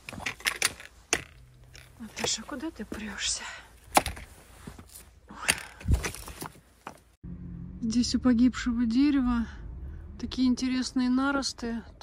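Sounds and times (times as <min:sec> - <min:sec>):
footsteps on loose rocks and leaves: 0:03.8 - 0:07.2.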